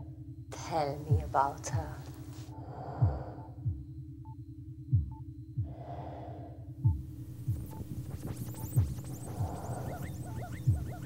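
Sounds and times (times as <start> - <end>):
low steady hum: 0.0 - 11.0
heartbeat-like double thud: 3.0 - 4.0, 4.9 - 5.8, 6.8 - 9.8, 10.6 - 11.0
high electronic chirps: 6.9 - 11.0.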